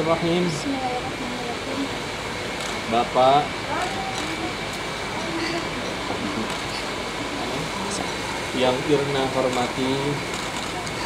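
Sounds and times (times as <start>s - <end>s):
electric fan noise: 0.0s - 11.0s
faint murmured voices: 2.9s - 11.0s.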